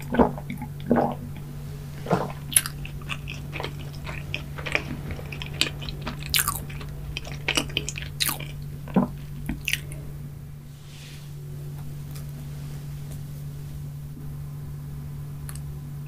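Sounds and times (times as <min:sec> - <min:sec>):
chewing food: 0:00.0 - 0:10.0.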